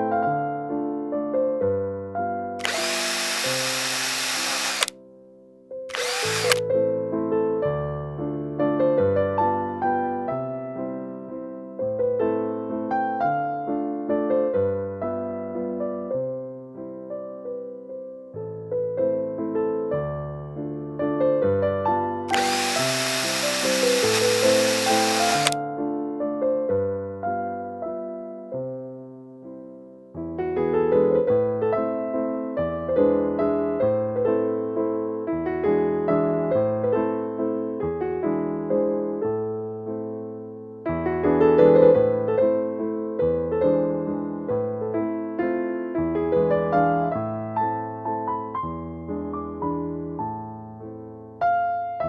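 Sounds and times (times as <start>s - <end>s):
background piano music: 0.0s - 4.4s, 5.0s - 52.0s
small power tool running: 2.6s - 4.9s, 5.9s - 6.6s, 22.3s - 25.6s.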